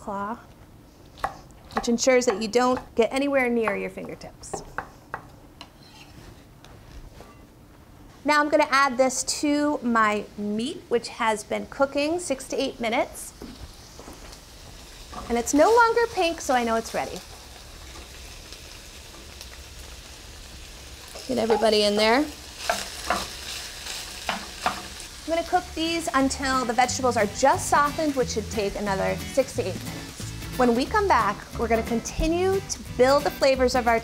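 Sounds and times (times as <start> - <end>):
meat sizzling in a skillet: 12.0 - 34.0.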